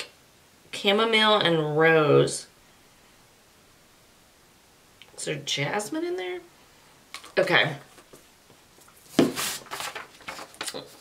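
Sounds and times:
paper rustling: 8.8s - 11.0s.

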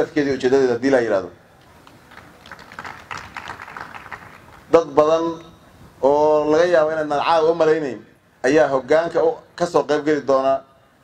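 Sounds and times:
light audience applause: 1.6s - 4.7s.

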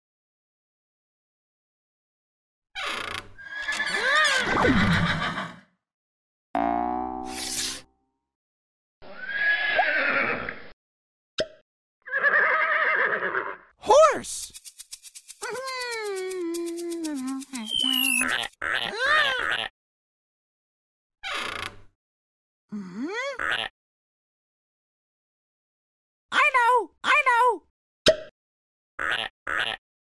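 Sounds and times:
wordless cartoon voice sounds: 13.8s - 14.5s, 15.4s - 19.7s, 26.3s - 27.7s.

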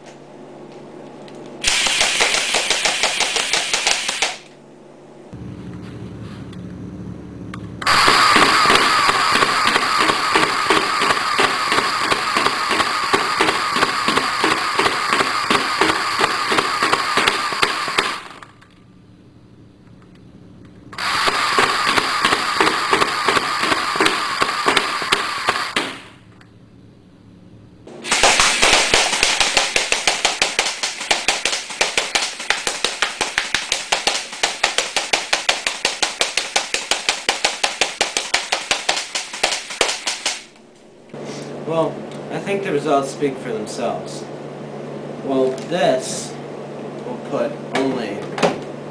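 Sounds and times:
steady whine: 0.0s - 48.9s
airsoft gun firing bursts: 1.6s - 4.5s, 7.9s - 18.5s, 21.0s - 26.2s, 28.0s - 40.5s.

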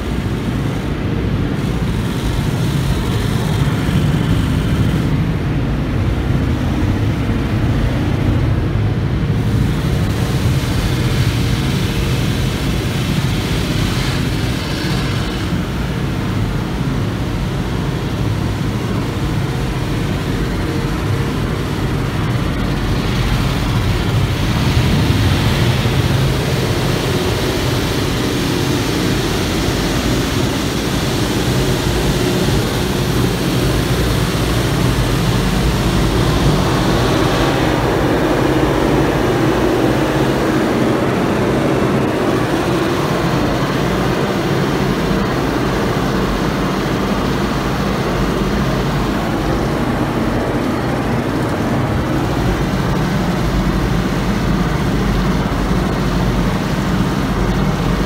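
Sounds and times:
water spray and rotating brushes: 0.0s - 5.6s, 9.2s - 58.0s.

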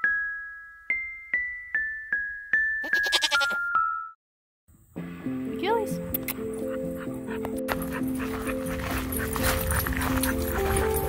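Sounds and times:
goat bleating: 2.8s - 3.7s.

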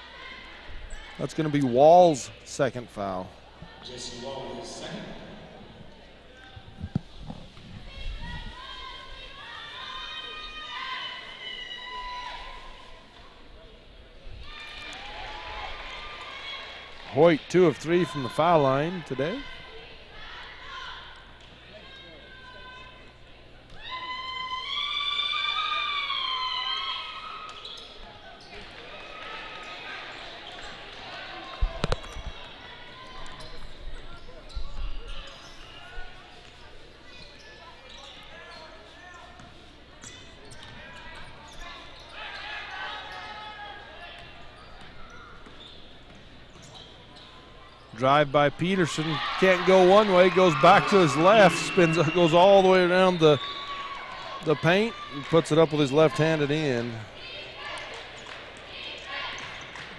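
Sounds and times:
murmur of crowd voices: 0.0s - 23.8s, 27.5s - 59.9s.

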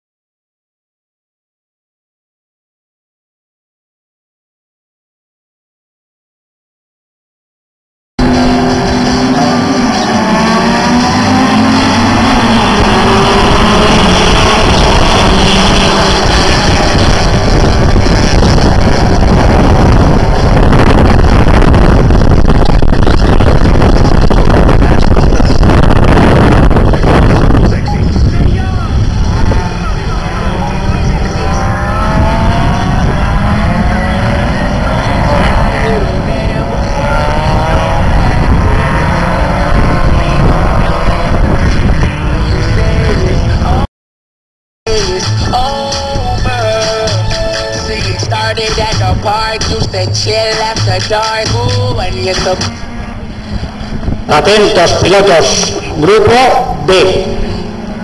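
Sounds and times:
dense roar of racing cars: 8.2s - 43.9s, 44.9s - 58.0s
racing car engines revving: 8.2s - 43.9s, 46.7s - 58.0s.

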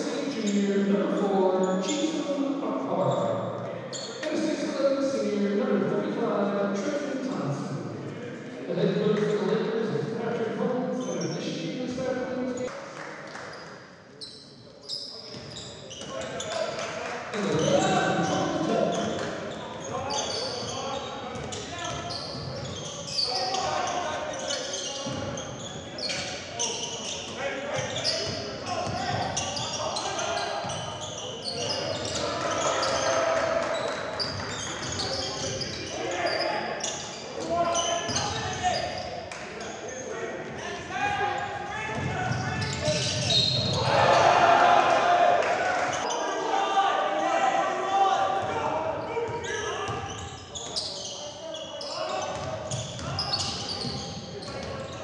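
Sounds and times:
players and coaches shouting: 26.8s - 33.9s, 39.9s - 50.3s.

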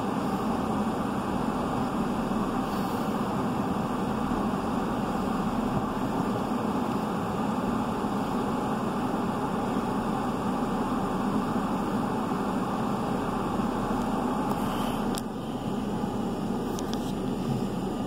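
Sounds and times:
car cabin hum and hiss: 0.0s - 18.0s.

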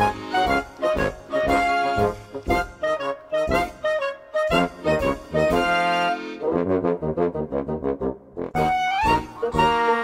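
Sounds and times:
instrumental music with brass lead: 0.0s - 10.0s.

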